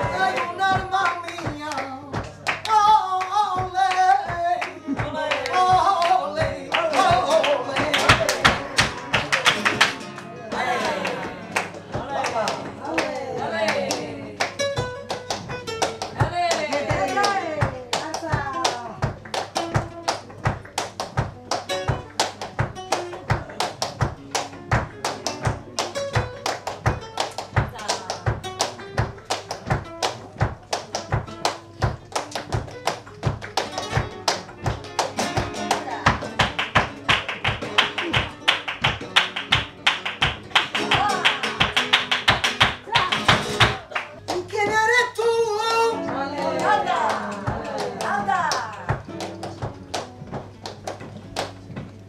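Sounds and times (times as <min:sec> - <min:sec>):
flamenco guitar strumming: 0:00.0 - 0:52.0
hand clapping: 0:00.0 - 0:52.0.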